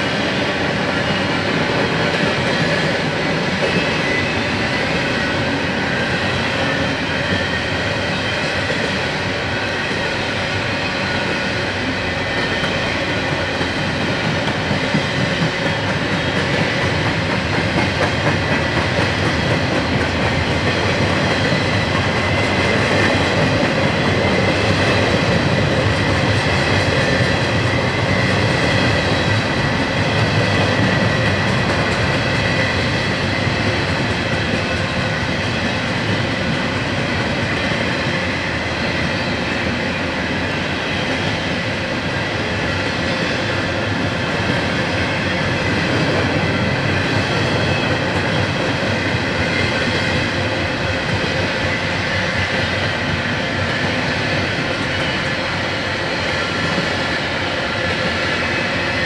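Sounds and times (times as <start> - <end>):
steel wheels on rail: 0.0 - 59.0.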